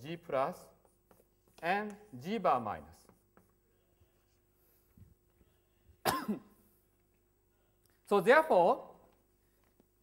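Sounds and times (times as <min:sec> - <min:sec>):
man clearing his throat: 0:06.0 - 0:06.6.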